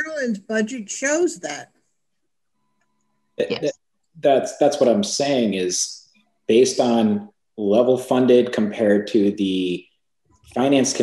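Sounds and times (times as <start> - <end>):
person short vocal sound: 3.4 - 9.8.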